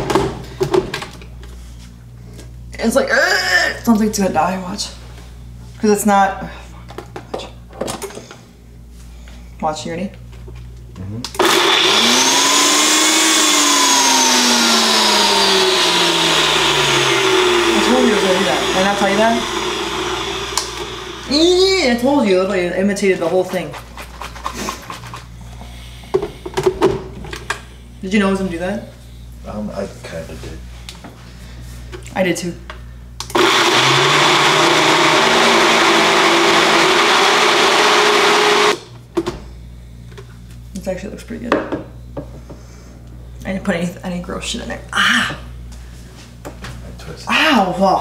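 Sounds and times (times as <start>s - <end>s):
blender motor whirring: 11.4s - 22.1s, 33.2s - 39.0s
person speaking: 14.6s - 23.8s.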